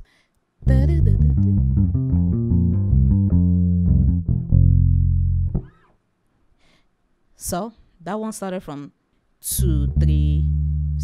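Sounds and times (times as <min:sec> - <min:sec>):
electric bass guitar lick: 0:00.6 - 0:06.0, 0:09.5 - 0:11.0.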